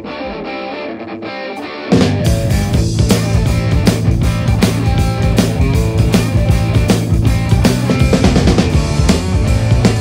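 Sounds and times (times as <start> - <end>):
electric guitar riff: 0.0 - 10.0
band with drums playing: 1.9 - 10.0.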